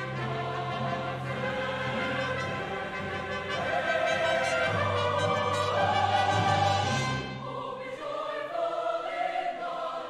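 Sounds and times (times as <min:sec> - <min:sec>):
strings and brass ensemble: 0:00.0 - 0:09.9
mixed choir singing: 0:00.0 - 0:10.0.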